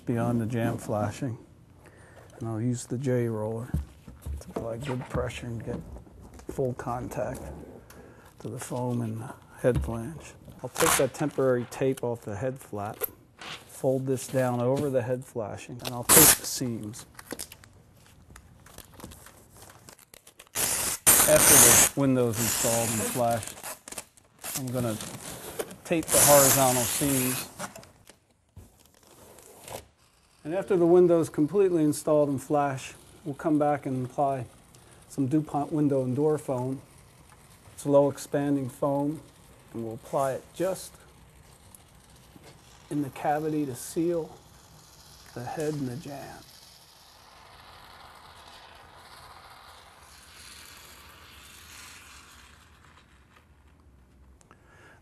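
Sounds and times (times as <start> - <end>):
foam gun hissing: 20.6 - 23.6, 25.4 - 27.6, 31.6 - 52.8.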